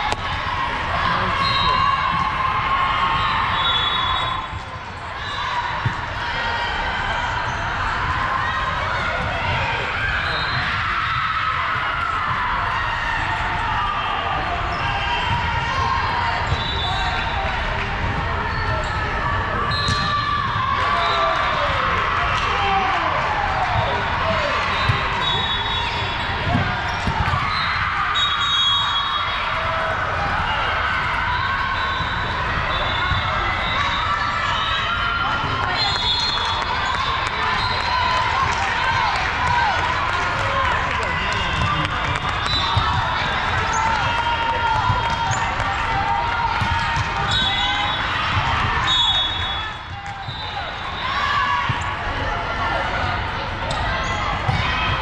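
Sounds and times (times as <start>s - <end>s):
many voices talking and calling: 0.0s - 55.0s.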